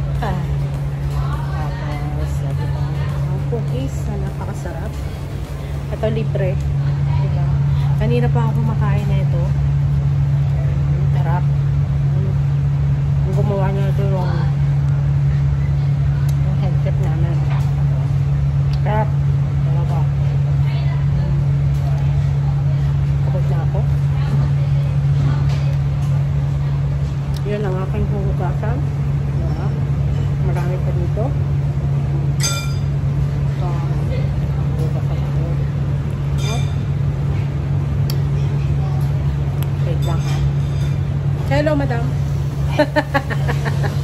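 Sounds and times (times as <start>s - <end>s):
faint voices: 0.0s - 8.7s
kitchen ventilation hum: 0.0s - 44.0s
ringing clink: 32.4s - 33.0s.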